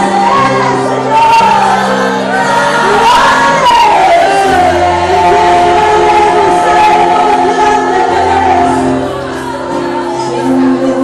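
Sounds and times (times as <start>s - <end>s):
choir singing worship music: 0.0s - 11.0s.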